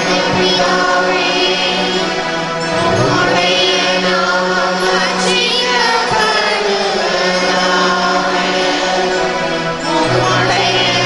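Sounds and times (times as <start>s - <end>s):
girls choir singing a hymn: 0.0s - 11.0s
held low note: 2.7s - 3.8s.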